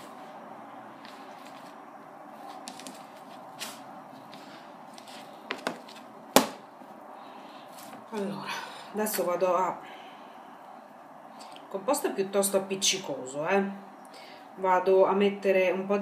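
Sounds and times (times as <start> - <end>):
hands kneading dough: 0.0 - 7.0.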